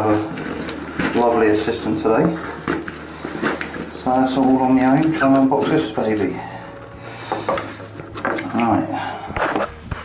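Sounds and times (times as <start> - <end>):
man speaking indistinctly: 1.0 - 2.5, 4.0 - 6.6.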